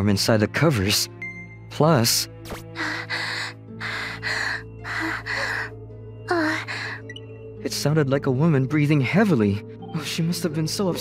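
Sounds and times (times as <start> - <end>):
background music: 0.0 - 11.0
woman breathing heavily: 2.7 - 7.2.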